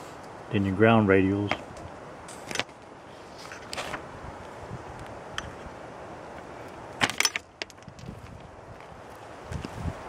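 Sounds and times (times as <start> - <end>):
background hiss: 0.0 - 10.0
paper handling: 3.4 - 4.1.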